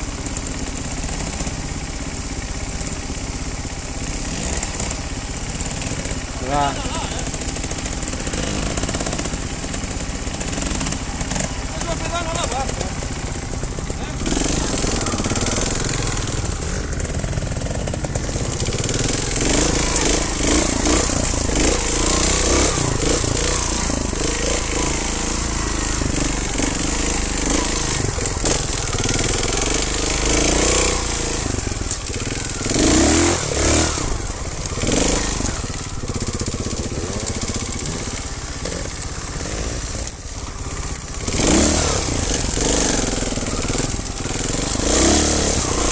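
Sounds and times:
motorcycle engine revving: 0:00.0 - 0:45.9.

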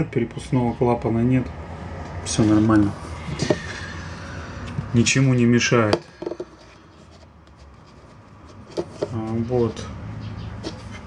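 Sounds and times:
fingers rubbing oil filter: 0:04.6 - 0:09.8, 0:10.5 - 0:11.0.

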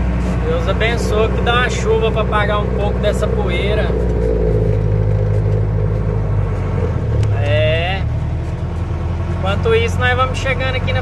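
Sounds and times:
diesel truck engine running: 0:00.0 - 0:11.0.

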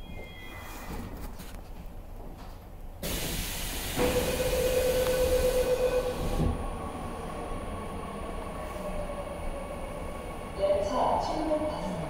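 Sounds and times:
subway train rushing noise: 0:00.0 - 0:12.0.

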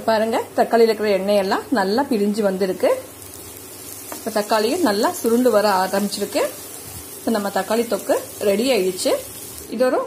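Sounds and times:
paste sizzling in a pan: 0:01.4 - 0:10.0
woman speaking: 0:07.3 - 0:10.0.

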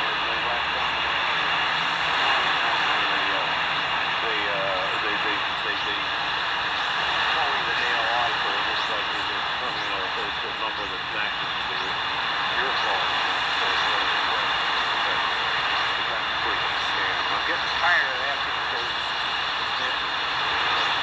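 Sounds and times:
person talking over radio: 0:00.0 - 0:03.6, 0:04.2 - 0:06.1, 0:06.8 - 0:21.0
shortwave radio static: 0:00.0 - 0:21.0.

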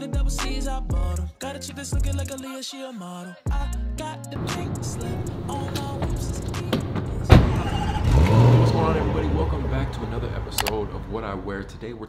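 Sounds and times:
car door slamming: 0:04.4 - 0:08.6
car engine starting and idling: 0:04.4 - 0:12.0.

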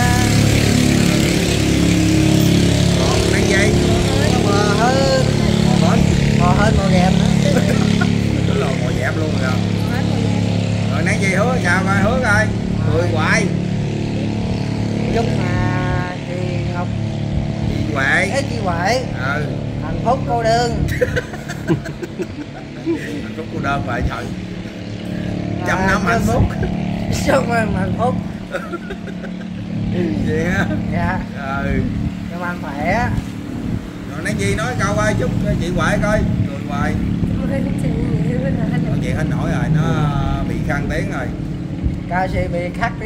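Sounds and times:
people talking: 0:00.0 - 0:01.6, 0:02.8 - 0:14.3, 0:14.9 - 0:17.0, 0:17.6 - 0:24.4, 0:25.1 - 0:33.2, 0:34.1 - 0:41.4, 0:42.1 - 0:43.0
motorcycle engine idling: 0:00.0 - 0:33.1.

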